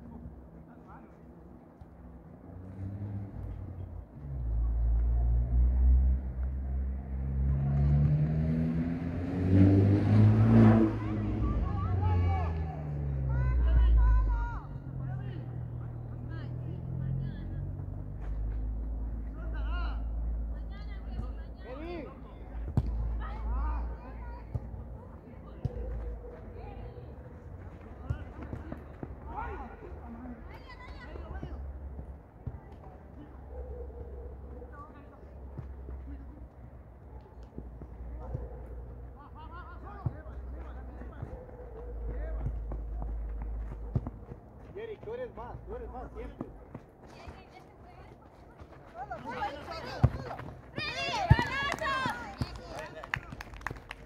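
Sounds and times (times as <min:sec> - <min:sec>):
distant shouts and voices: 0:00.0 - 0:54.0
vehicle engine passing by: 0:02.3 - 0:30.5.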